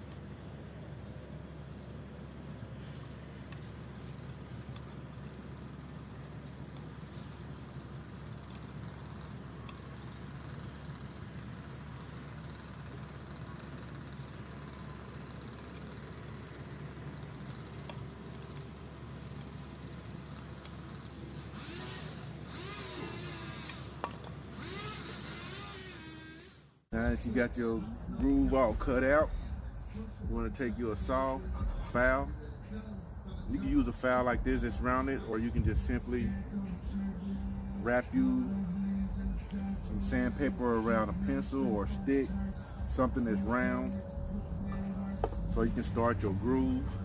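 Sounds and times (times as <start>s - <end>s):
low rumble of road traffic: 0.0s - 47.0s.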